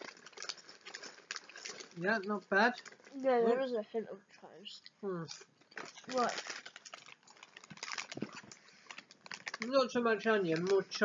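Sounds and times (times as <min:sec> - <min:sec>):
crisps being chewed: 0:00.0 - 0:03.3, 0:04.8 - 0:11.0
crisp packet rustling: 0:00.0 - 0:03.4, 0:05.3 - 0:11.0.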